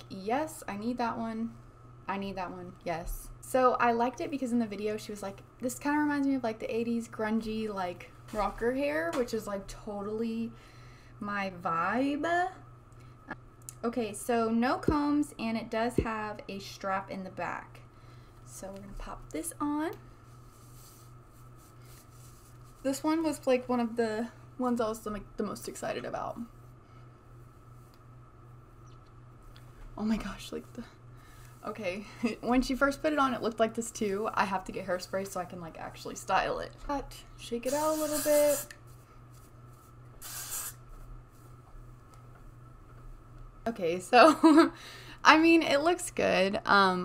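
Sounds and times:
steady low hum: 0:00.0 - 0:47.0
wig fibres rustling: 0:20.2 - 0:23.0
wig hair swishing: 0:20.3 - 0:23.0, 0:37.6 - 0:41.6.

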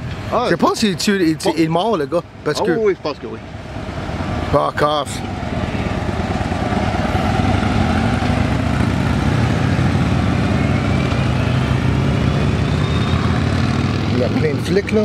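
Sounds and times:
car passing: 0:00.0 - 0:15.0
motorcycle engine rumble: 0:03.8 - 0:15.0.

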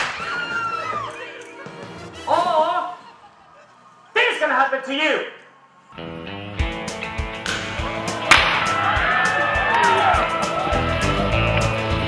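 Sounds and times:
loud sharp crack: 0:00.0 - 0:00.6, 0:07.4 - 0:09.0
music with gliding notes: 0:06.0 - 0:12.0.

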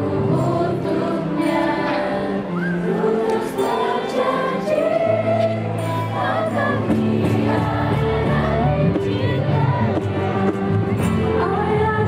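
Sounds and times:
group singing in chorus: 0:00.0 - 0:12.0
musical accompaniment: 0:00.0 - 0:12.0.

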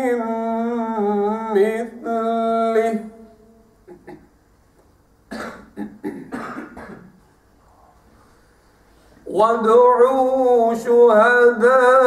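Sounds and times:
person coughing: 0:05.3 - 0:07.2.

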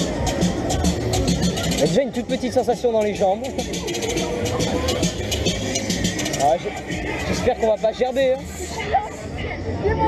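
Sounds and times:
fairground music: 0:00.0 - 0:10.0
fairground ride rumble: 0:00.0 - 0:10.0.

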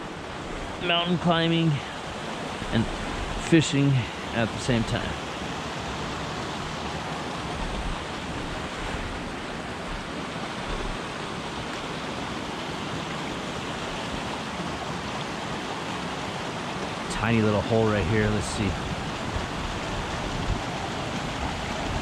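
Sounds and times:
stream running over rocks: 0:00.0 - 0:22.0.

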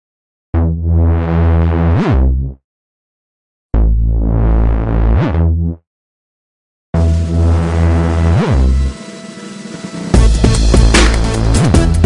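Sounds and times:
synth pitch sweep: 0:07.0 - 0:10.3
low synth chord: 0:07.0 - 0:11.6.

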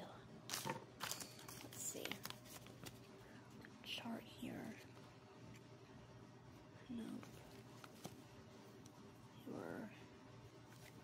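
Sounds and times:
packaging crinkling: 0:00.5 - 0:03.0
soft murmured voice: 0:09.2 - 0:10.2.

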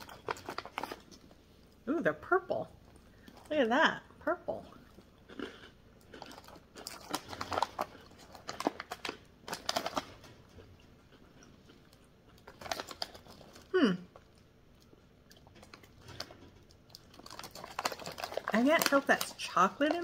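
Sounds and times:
crunching and chewing cracker: 0:00.0 - 0:01.8, 0:02.7 - 0:03.6, 0:04.6 - 0:20.0.

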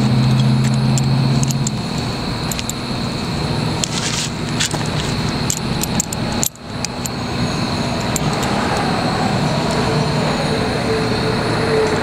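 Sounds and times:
vehicle rumble: 0:00.0 - 0:12.0
metallic clicks and jingles: 0:00.2 - 0:09.0.

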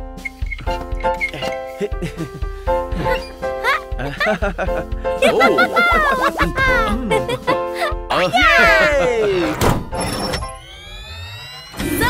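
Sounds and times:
cheerful cartoon voice: 0:03.6 - 0:04.4, 0:05.2 - 0:09.6
rising tone: 0:09.4 - 0:12.0.

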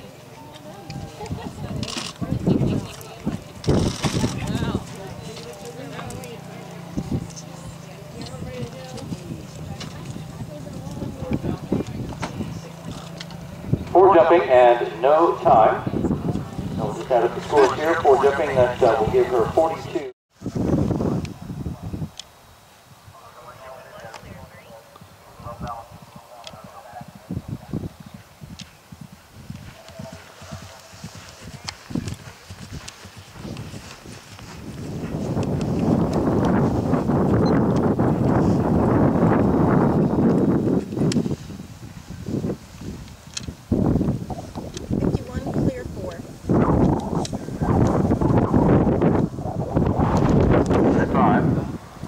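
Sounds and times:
horse hoofbeats galloping on grass: 0:00.0 - 0:14.9, 0:28.0 - 0:51.4
loud rush of noise: 0:13.4 - 0:22.1, 0:44.1 - 0:52.0.

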